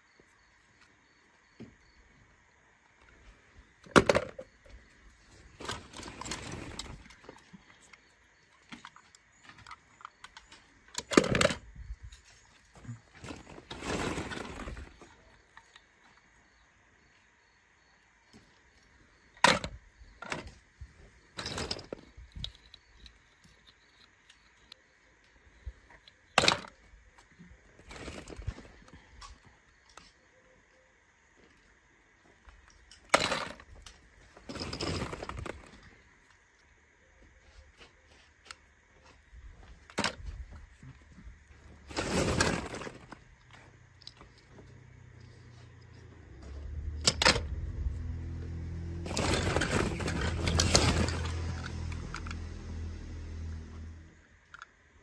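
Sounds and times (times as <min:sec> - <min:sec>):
toy cars clattering: 0:03.9 - 0:04.7, 0:05.3 - 0:12.4, 0:13.1 - 0:15.9, 0:19.4 - 0:20.6, 0:21.3 - 0:24.8, 0:25.9 - 0:30.2, 0:32.5 - 0:36.0, 0:41.7 - 0:44.5, 0:45.2 - 0:47.9, 0:49.0 - 0:52.9.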